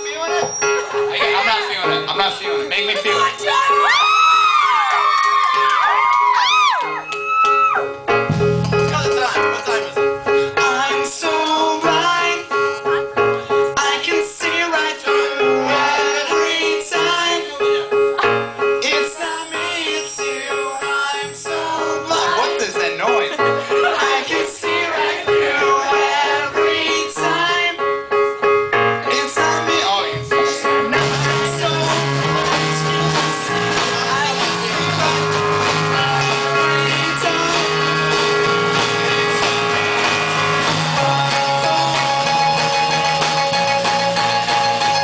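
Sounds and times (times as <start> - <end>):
keyboard: 0.0 - 45.0
drums: 5.6 - 10.1, 30.4 - 45.0
synthesizer pitch glides: 17.5 - 22.6
person singing: 29.0 - 40.1, 40.7 - 44.1.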